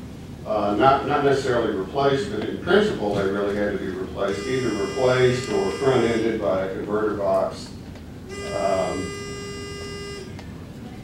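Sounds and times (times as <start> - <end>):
quiet room noise: 0.0 - 11.0
steady buzzing tone: 4.2 - 7.5, 8.2 - 10.7.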